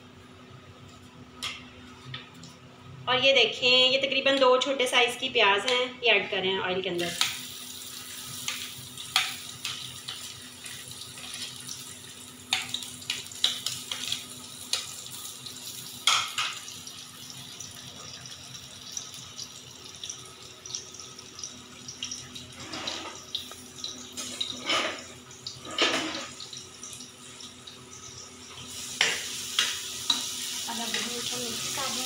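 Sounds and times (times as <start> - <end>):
onions sizzling in hot oil: 7.0 - 32.0.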